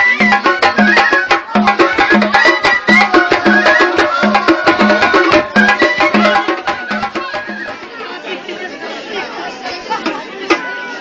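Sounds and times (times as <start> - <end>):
folk music with frame drum: 0.0 - 8.2, 9.7 - 11.0
crowd chatter: 0.0 - 11.0.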